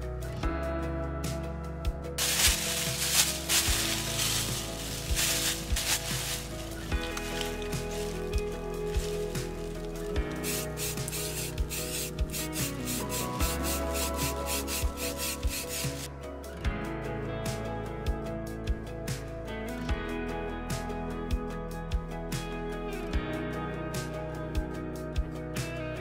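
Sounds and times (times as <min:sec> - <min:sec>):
background guitar music: 0:00.0 - 0:26.0
aerosol spray paint hissing: 0:02.2 - 0:16.1.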